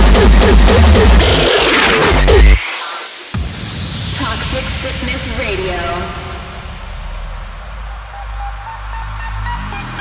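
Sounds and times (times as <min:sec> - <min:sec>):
deep bass rumble: 0:03.4 - 0:09.9.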